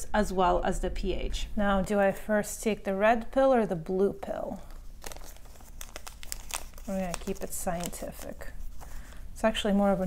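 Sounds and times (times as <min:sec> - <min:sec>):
plastic packaging crinkling: 0:04.6 - 0:10.0.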